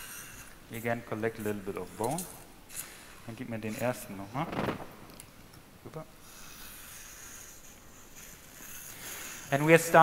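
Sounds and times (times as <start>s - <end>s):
faint high hiss of dental equipment: 0.0s - 4.4s, 6.2s - 10.0s.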